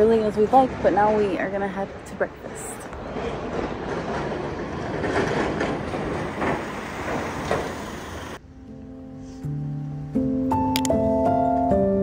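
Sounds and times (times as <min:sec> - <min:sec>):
rushing street noise: 0:00.0 - 0:10.2
soft piano music: 0:08.4 - 0:12.0.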